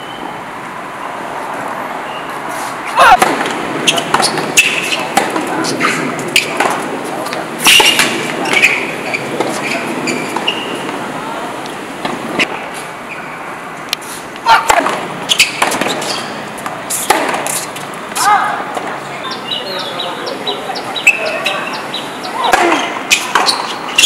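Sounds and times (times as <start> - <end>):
voices: 1.8 - 13.2, 13.9 - 24.0
racquets striking tennis ball: 2.9 - 11.0, 14.4 - 19.0, 21.0 - 24.0
tennis ball bouncing: 2.9 - 11.0, 14.5 - 19.0, 21.0 - 24.0.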